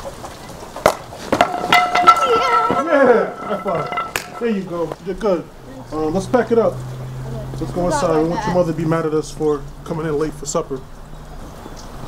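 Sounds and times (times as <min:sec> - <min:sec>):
knocks and clatters: 0:00.0 - 0:05.0
bat hitting ball: 0:00.8 - 0:04.7.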